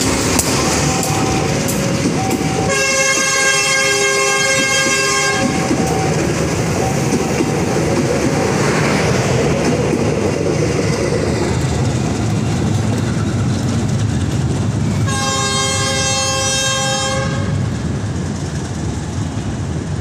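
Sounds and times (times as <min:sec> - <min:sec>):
train rolling on rails: 0:00.0 - 0:20.0
train horn blast: 0:02.3 - 0:06.2, 0:15.0 - 0:17.7.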